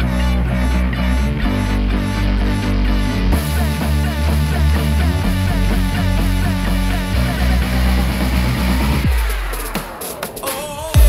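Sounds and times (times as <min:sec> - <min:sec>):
music with heavy bass line: 0:00.0 - 0:11.0.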